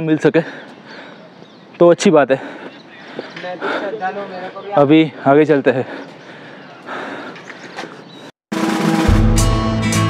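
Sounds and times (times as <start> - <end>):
outdoor noise: 0.0 - 10.0
background music with drums: 8.5 - 10.0.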